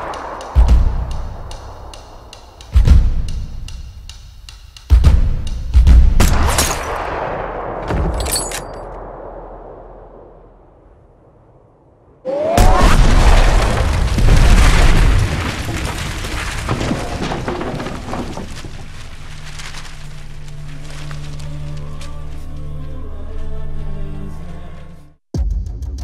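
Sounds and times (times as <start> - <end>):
heavy boom: 0.0 - 3.2
loud rumbling explosion: 8.9 - 18.5.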